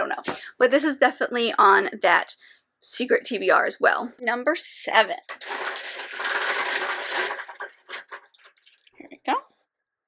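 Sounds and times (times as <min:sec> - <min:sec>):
small hard balls rattling: 0:05.3 - 0:09.0.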